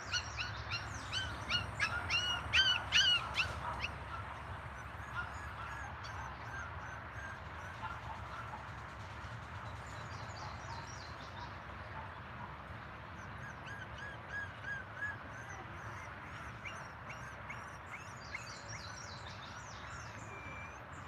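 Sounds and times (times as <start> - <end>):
lower evenly spaced bird notes: 0.0 - 8.6
birds chirping: 0.0 - 11.6
low outdoor hum: 0.0 - 21.0.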